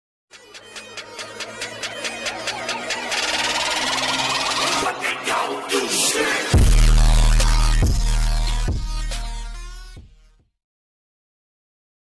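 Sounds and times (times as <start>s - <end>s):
fast electronic beats: 0.3s - 10.1s.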